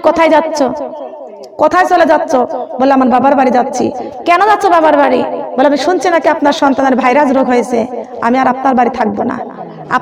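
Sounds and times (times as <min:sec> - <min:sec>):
woman preaching: 0:00.0 - 0:10.0.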